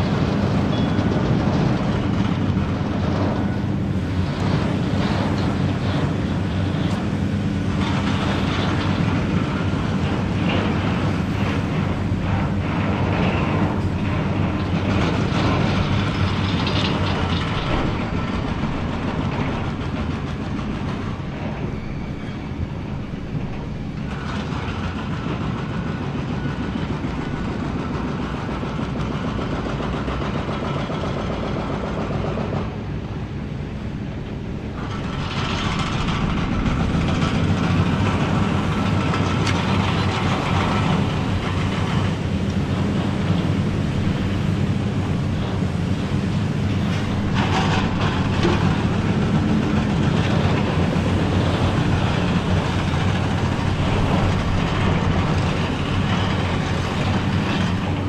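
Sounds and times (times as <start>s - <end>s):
diesel engine droning under load: 0.0s - 58.0s.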